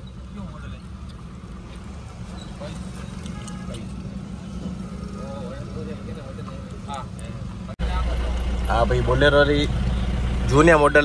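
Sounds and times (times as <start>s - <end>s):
diesel engine idling: 4.0s - 11.0s.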